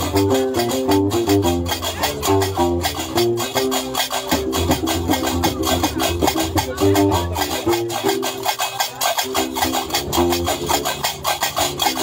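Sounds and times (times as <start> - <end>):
bass lute plucking: 0.0 - 12.0.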